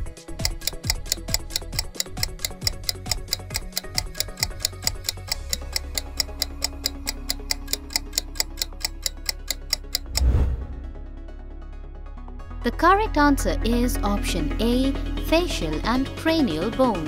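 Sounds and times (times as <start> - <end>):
fast clock ticking: 0.0 - 10.4
low background music drone: 0.0 - 17.0.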